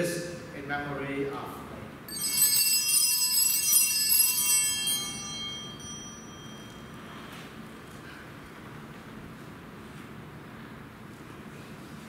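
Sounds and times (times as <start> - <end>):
small bells jingling: 2.1 - 7.3.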